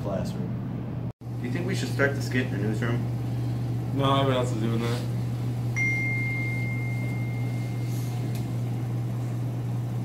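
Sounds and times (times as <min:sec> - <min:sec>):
low room hum: 0:00.0 - 0:10.0
thin high-pitched tone: 0:05.8 - 0:08.2.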